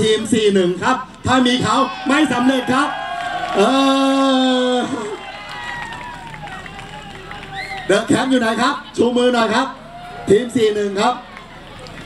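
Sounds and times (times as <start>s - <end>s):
man's voice over loudspeaker: 0.0s - 2.9s, 7.9s - 11.2s
crowd chatter: 0.0s - 12.0s.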